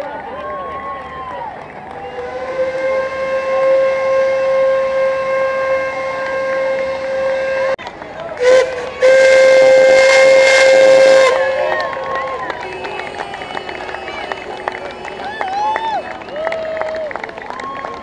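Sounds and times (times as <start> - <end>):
steam locomotive whistle: 2.0 - 7.8, 8.4 - 16.7.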